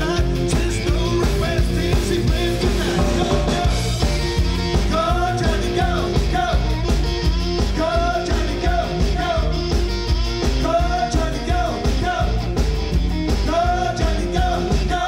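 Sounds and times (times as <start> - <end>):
person singing: 0.0 - 9.8, 13.3 - 15.0
drum beat: 0.0 - 15.0
live rock band: 0.0 - 15.0.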